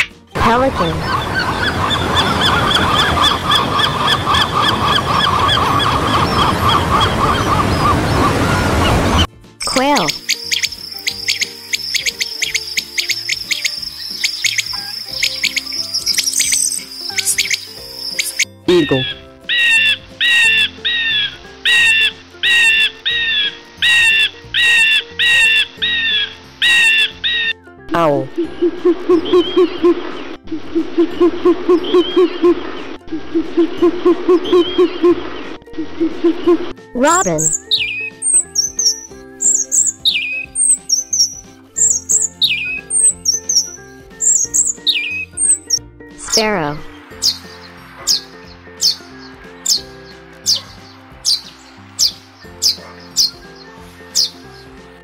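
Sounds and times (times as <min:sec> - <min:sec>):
soft background music: 0:00.0 - 0:55.0
eagle calls: 0:00.6 - 0:09.2, 0:09.8 - 0:27.6, 0:37.1 - 0:46.4
bird chirp and falling whistle: 0:10.1 - 0:18.5, 0:37.5 - 0:45.8.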